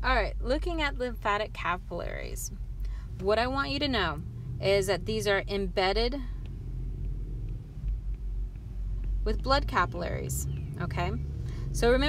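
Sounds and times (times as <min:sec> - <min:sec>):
low background rumble: 0:00.0 - 0:12.0
faint ticks: 0:06.3 - 0:09.2.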